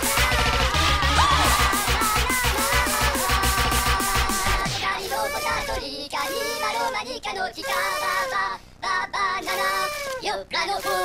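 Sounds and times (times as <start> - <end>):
high-pitched sung vocal sample: 0.0 - 11.0.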